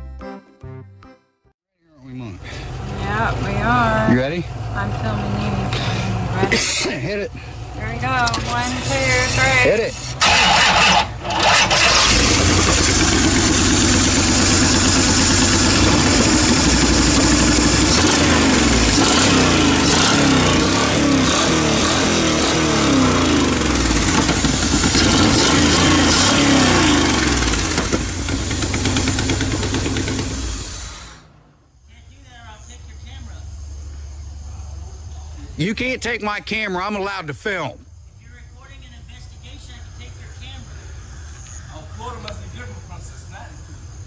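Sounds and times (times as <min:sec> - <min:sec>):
car engine starting and running: 0:02.0 - 0:37.6.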